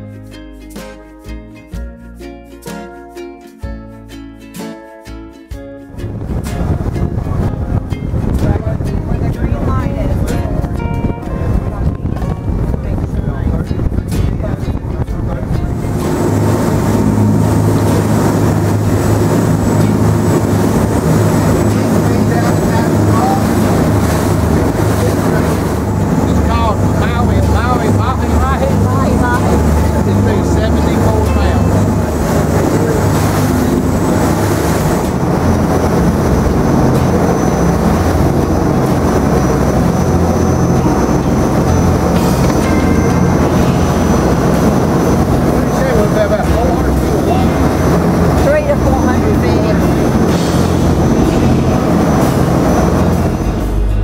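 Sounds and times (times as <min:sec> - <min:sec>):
water rushing from hull and wake: 0:00.0 - 0:54.0
boat engines droning: 0:05.1 - 0:54.0.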